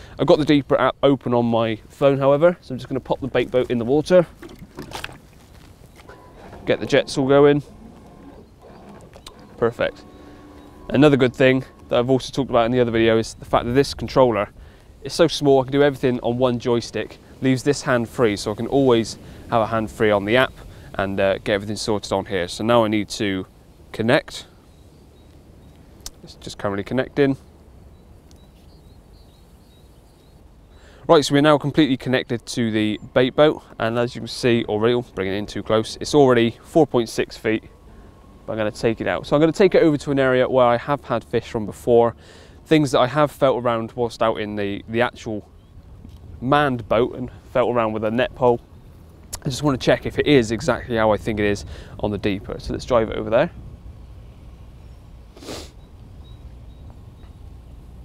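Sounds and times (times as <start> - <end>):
low steady rumble: 0.0 - 58.0
faint high bird chirps: 8.4 - 12.3, 27.8 - 30.9, 55.8 - 57.5
short hissing noise: 55.3 - 55.9.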